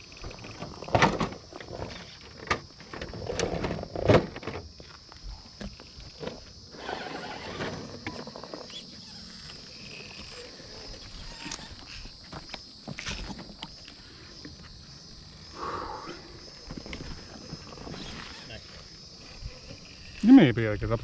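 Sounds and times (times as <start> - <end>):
rc crawler scraping on rocks: 6.2 - 12.2, 16.8 - 21.0.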